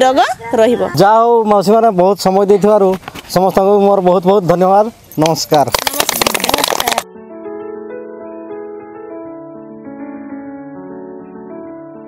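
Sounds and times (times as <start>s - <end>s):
small group clapping: 5.2s - 7.0s
instrumental music: 5.8s - 12.0s.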